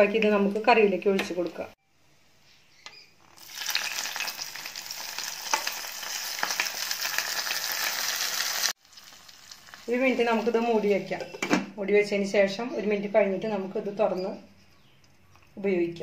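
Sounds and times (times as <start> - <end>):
hot oil sizzling and crackling: 3.2 - 11.0.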